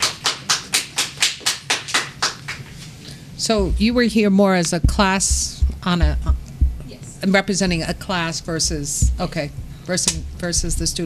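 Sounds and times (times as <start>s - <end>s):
hand clapping: 0.0s - 2.8s.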